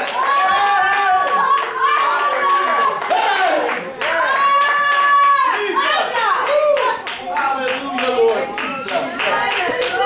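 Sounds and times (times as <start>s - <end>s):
congregation clapping: 0.0s - 10.0s.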